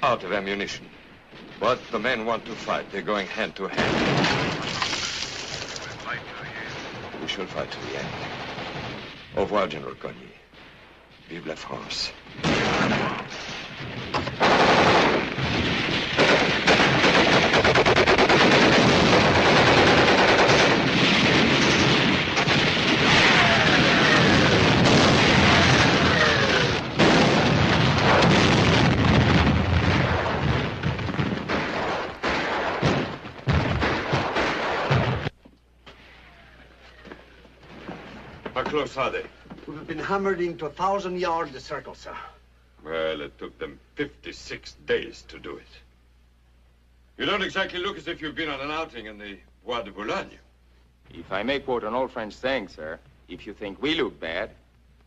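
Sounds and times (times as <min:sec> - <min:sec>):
shell explosions: 0:00.7 - 0:35.4
machine-gun and rifle fire: 0:03.8 - 0:06.2, 0:06.8 - 0:09.4, 0:12.4 - 0:35.3.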